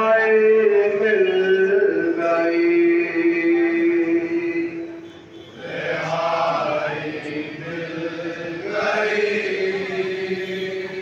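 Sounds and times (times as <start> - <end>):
lead reciter singing: 0.0 - 11.0
men chanting in chorus: 5.6 - 11.0.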